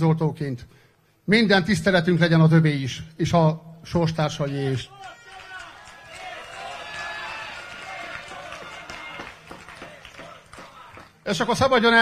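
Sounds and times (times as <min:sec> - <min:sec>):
crowd applause: 0:04.9 - 0:11.2.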